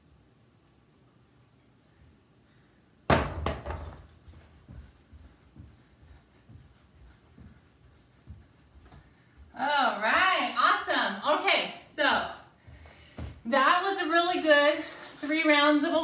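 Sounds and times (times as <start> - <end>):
feet thumping on rug: 3.1 - 9.5, 12.6 - 13.4.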